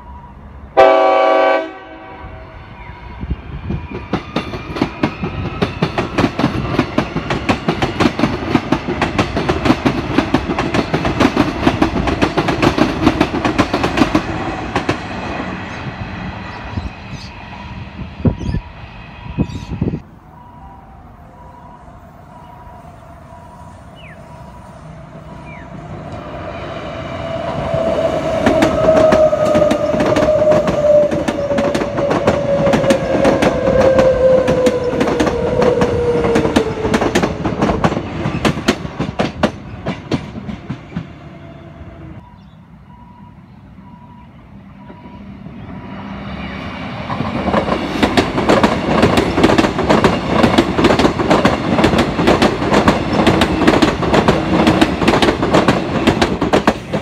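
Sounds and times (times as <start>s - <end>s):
wheels clacking over rail joints: 3.9s - 15.6s, 27.4s - 41.2s, 47.1s - 57.0s.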